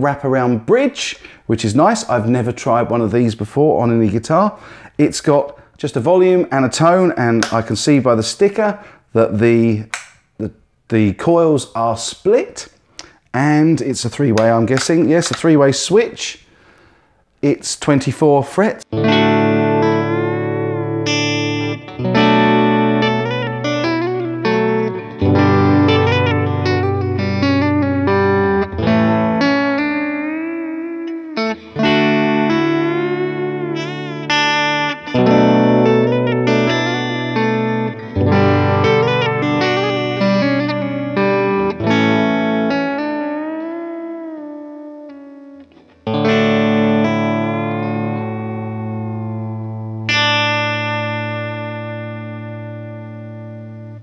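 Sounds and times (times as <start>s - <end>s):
electric guitar playing: 18.9s - 54.0s.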